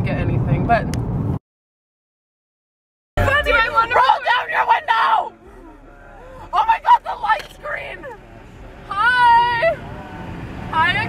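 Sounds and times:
woman speaking: 0:03.2 - 0:05.3, 0:06.5 - 0:08.2
low steady rumble: 0:03.2 - 0:11.0.

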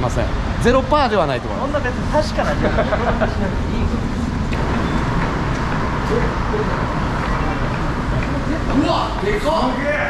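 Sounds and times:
road traffic rumble: 0:00.0 - 0:10.0
faint voices: 0:01.5 - 0:10.0.

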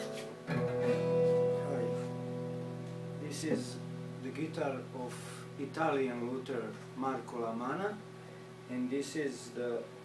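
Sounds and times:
acoustic guitar strummed: 0:00.0 - 0:07.2.

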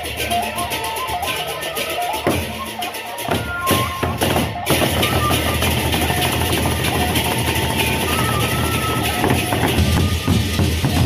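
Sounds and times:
large barrel drums beaten: 0:02.0 - 0:11.0.

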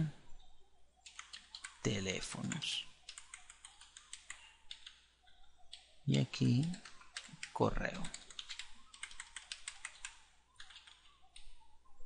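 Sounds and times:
typing on computer keyboard: 0:01.0 - 0:05.0, 0:06.5 - 0:11.6.

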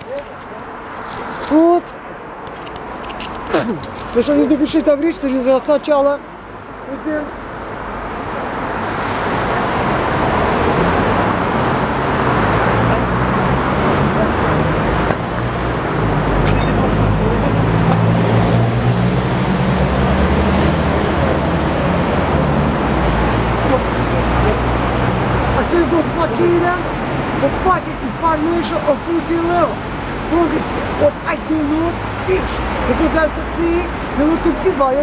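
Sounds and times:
road traffic: 0:00.0 - 0:35.0.

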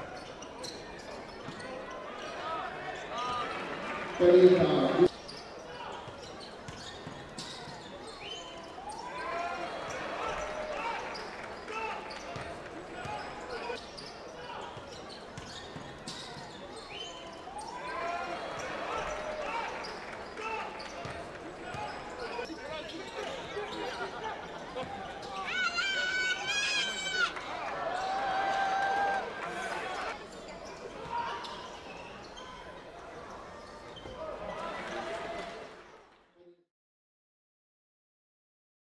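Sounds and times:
voices of players and crowd: 0:00.0 - 0:36.6
sneakers squeaking on hardwood: 0:00.1 - 0:02.3, 0:05.2 - 0:09.0, 0:10.4 - 0:17.9.

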